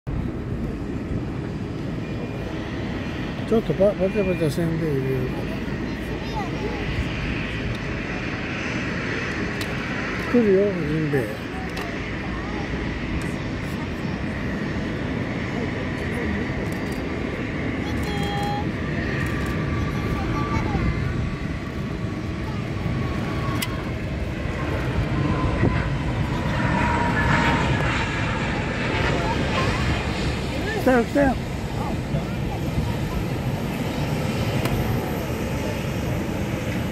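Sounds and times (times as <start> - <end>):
aircraft engines running: 0.1 - 36.9.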